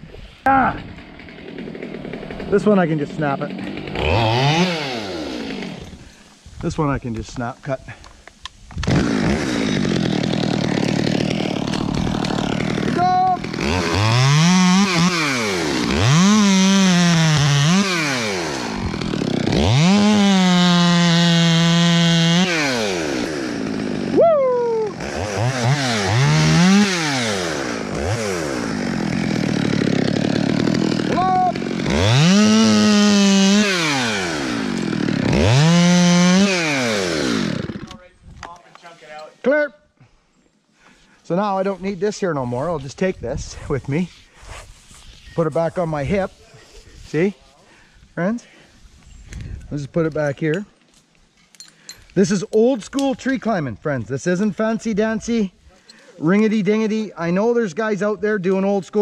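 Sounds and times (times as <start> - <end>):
chainsaw revving: 0.9 - 6.1, 8.8 - 24.2, 24.8 - 38.0.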